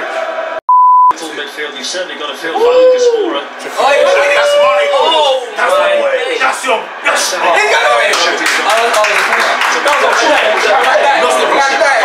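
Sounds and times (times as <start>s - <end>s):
men talking and calling out: 2.4s - 8.5s.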